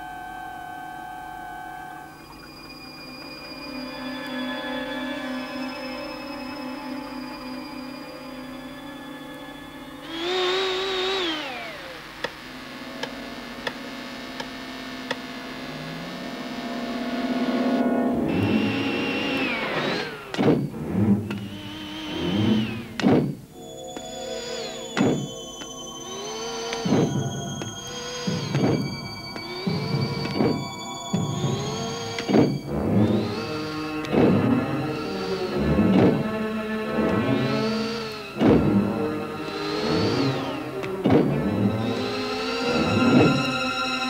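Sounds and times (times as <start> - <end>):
synthesizer film score: 0.0 - 44.0
robot servo whines: 10.0 - 13.2, 18.3 - 36.4, 37.0 - 44.0
falling electronic sweep: 10.0 - 20.3
sharp thunks: 23.0 - 23.4.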